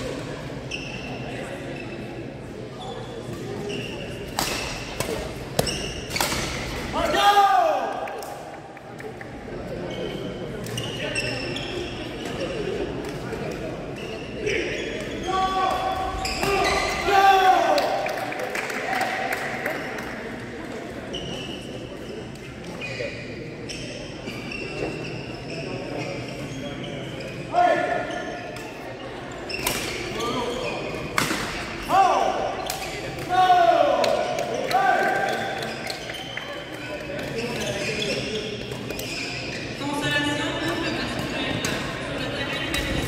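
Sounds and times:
sneakers squeaking on floor: 0:00.6 - 0:06.8, 0:09.7 - 0:17.1, 0:21.0 - 0:43.0
racket hitting shuttlecock: 0:31.1 - 0:31.7.

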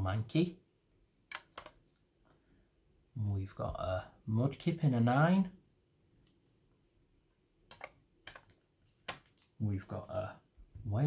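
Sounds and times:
hard plastic clicks: 0:07.7 - 0:09.5.

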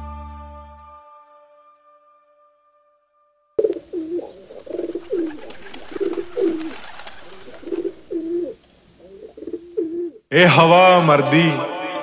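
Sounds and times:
pigeons cooing: 0:03.6 - 0:10.3.

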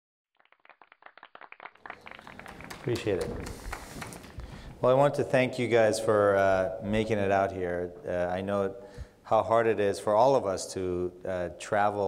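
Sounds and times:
audience applauding: 0:00.4 - 0:04.8.

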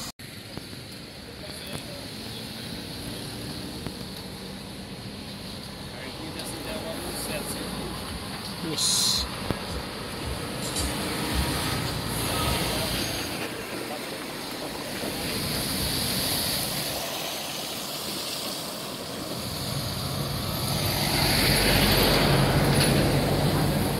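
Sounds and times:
diesel truck engine hum: 0:00.0 - 0:23.9
highway lorry traffic: 0:00.0 - 0:23.9.

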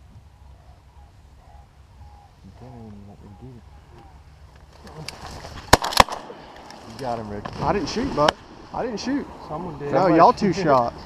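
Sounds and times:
shotgun shots: 0:05.7 - 0:06.6.

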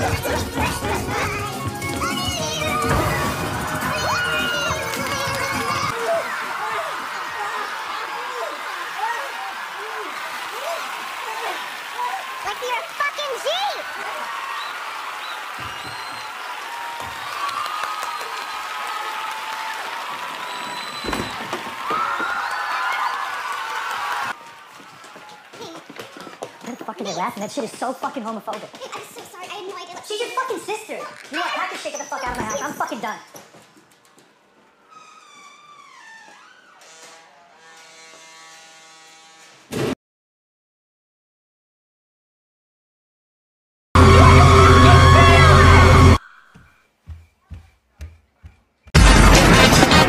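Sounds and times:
audience applauding and cheering: 0:00.0 - 0:27.0
whoops: 0:14.0 - 0:25.4.

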